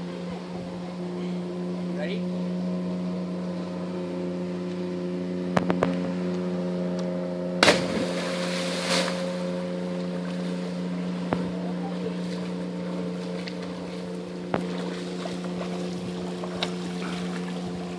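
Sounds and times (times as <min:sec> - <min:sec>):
churning water: 0:00.0 - 0:17.9
steady low hum: 0:00.0 - 0:17.9
loud splash into water: 0:07.6 - 0:09.4.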